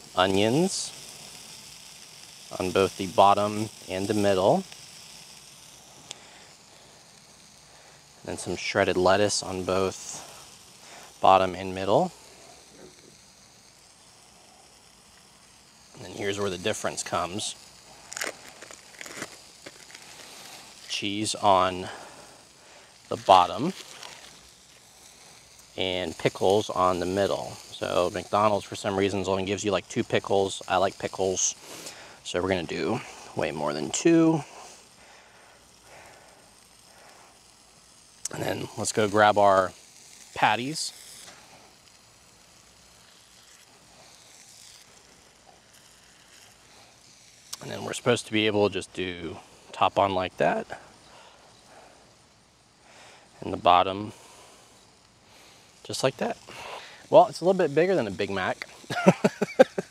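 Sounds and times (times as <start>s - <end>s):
faint background hiss: 0.0s - 59.9s
plastic wrapper crinkling: 11.9s - 28.1s, 34.6s - 48.0s.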